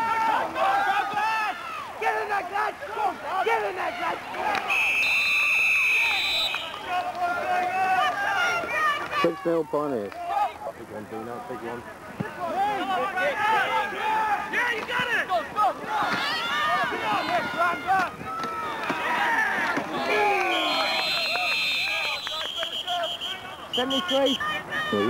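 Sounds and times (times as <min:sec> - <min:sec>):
many voices shouting: 0:00.0 - 0:04.8, 0:05.8 - 0:09.5, 0:12.4 - 0:25.0
referee's whistle: 0:04.6 - 0:06.8, 0:19.9 - 0:24.6.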